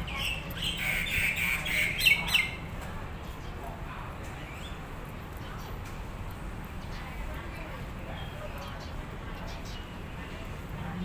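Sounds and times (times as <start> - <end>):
birds chirping and squawking: 0.0 - 2.6.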